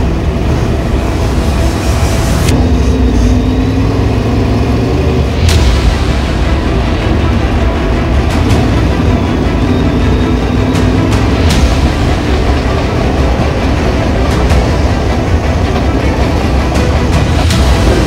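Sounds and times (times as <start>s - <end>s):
racing engine running low: 0.0s - 18.0s.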